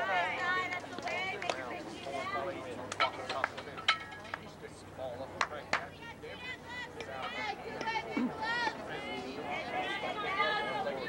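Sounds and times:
players calling and chattering: 0.0s - 11.0s.

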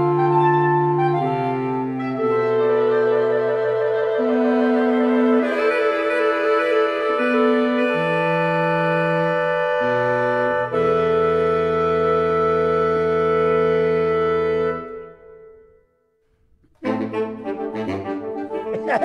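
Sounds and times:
saxophone quartet playing chords: 0.0s - 15.7s, 16.7s - 19.0s.

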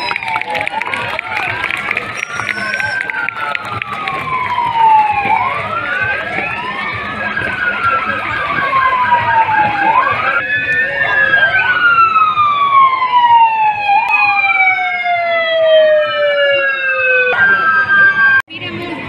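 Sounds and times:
ambulance sirens wailing: 0.0s - 19.0s.

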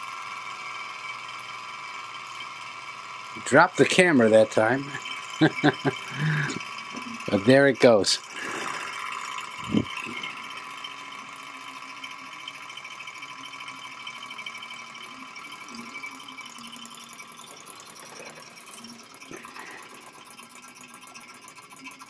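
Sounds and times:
model engine whirring and clattering: 0.0s - 22.0s.

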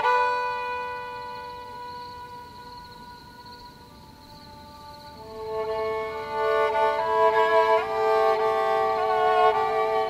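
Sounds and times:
faint high wavering tone: 0.0s - 10.0s.

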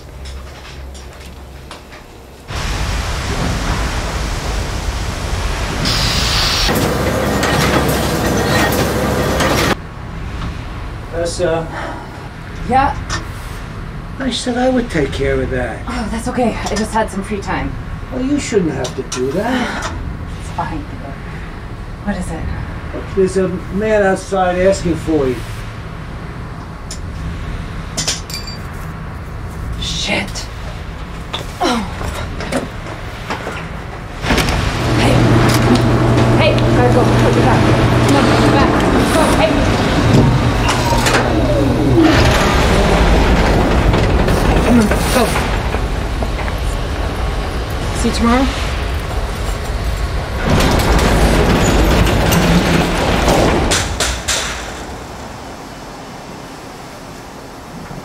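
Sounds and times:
steady low hum: 19.6s - 54.0s
metal tool clinking on metal: 28.0s - 28.7s
metal gate rattling and rumbling: 31.9s - 55.1s.

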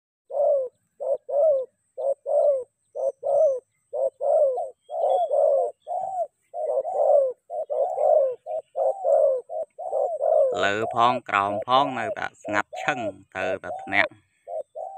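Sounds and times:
dove cooing: 0.3s - 14.9s.

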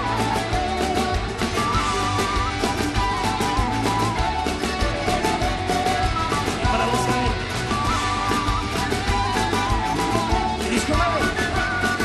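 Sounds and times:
live band playing: 0.0s - 12.0s
wind instrument melody: 0.0s - 12.0s.

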